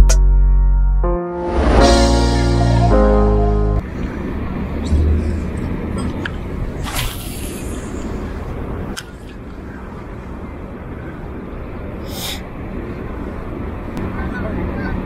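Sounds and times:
background music: 0.0 - 3.8
outdoor noise haze: 3.8 - 15.0.

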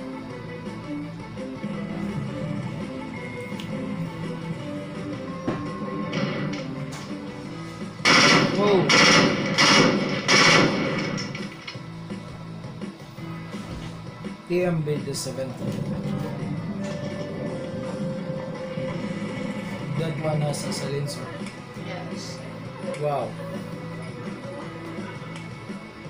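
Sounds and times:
background music: 0.0 - 26.0
automatic rifle fire bursts: 8.0 - 11.5.

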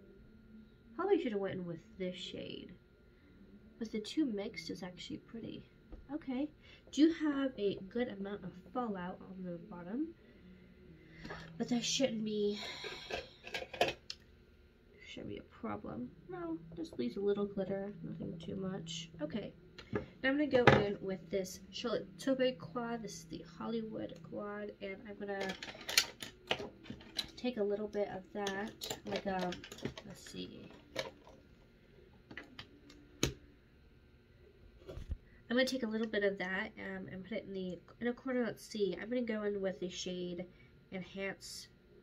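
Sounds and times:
makeup items clicking and tapping: 28.4 - 31.4.

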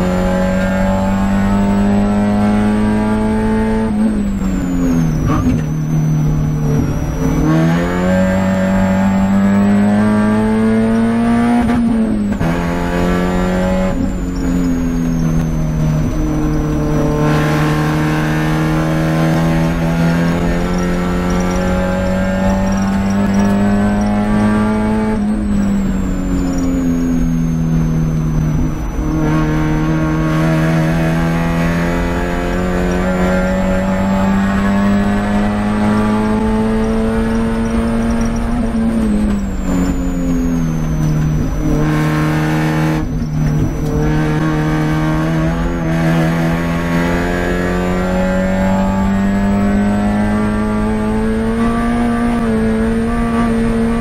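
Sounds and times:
race car engine accelerating: 0.0 - 54.0.

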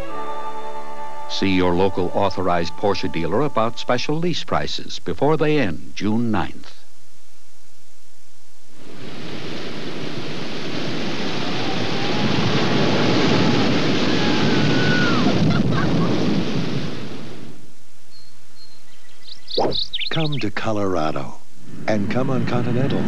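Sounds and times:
whitewater rushing: 8.9 - 17.3.

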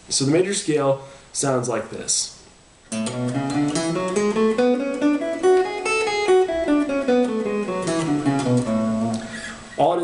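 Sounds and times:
guitar plucking scale: 2.9 - 9.8.

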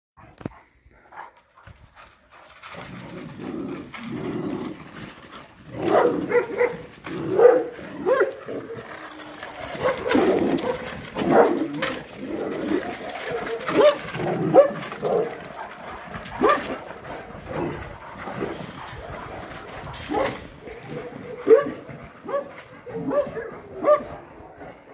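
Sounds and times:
dogs making faint vocal sounds: 0.2 - 24.9.

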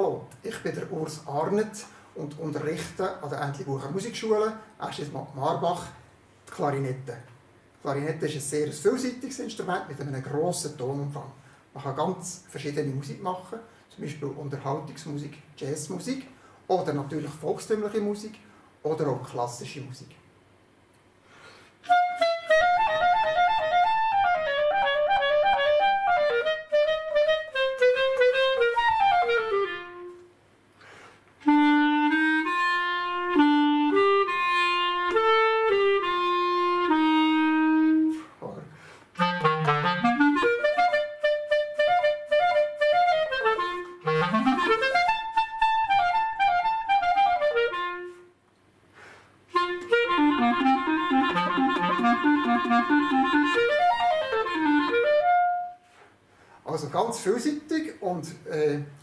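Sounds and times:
solo clarinet: 21.8 - 30.3, 31.4 - 38.4, 39.1 - 48.4, 49.5 - 56.1.

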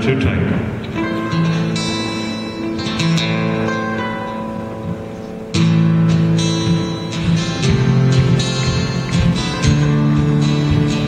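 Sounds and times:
guitars playing sustained chords: 0.0 - 11.0
loud strummed guitar chord: 0.9 - 11.0.

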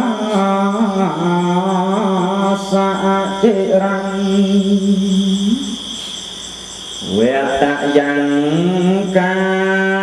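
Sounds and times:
young man chanting: 0.0 - 6.0, 7.0 - 10.0
steady high-pitched hiss: 0.0 - 10.0.

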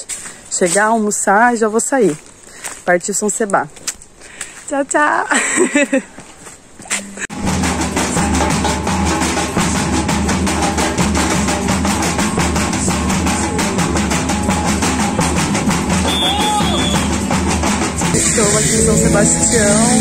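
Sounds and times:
surdo bass drums: 7.3 - 20.0
snare drums: 7.4 - 19.3.

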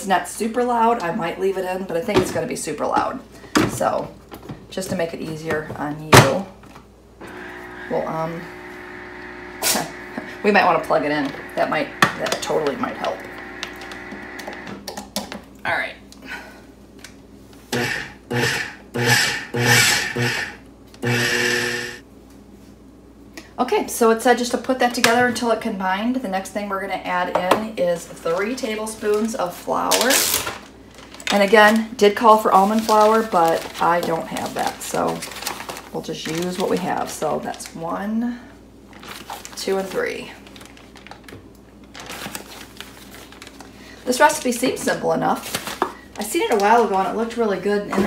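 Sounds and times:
food processor motor pulsing: 7.2 - 14.8, 17.7 - 22.0
plastic bag crinkling: 28.2 - 37.8, 38.9 - 44.6, 45.3 - 47.2.

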